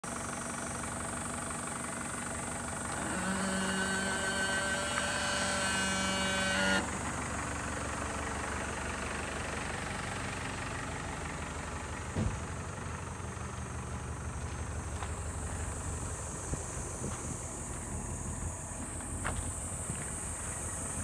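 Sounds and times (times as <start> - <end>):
diesel engine idling: 0.0 - 21.0
steady pitched hum: 11.2 - 21.0.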